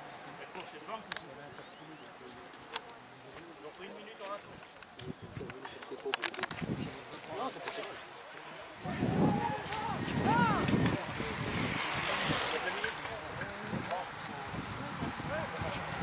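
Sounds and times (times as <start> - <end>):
spectators shouting: 8.8 - 10.8.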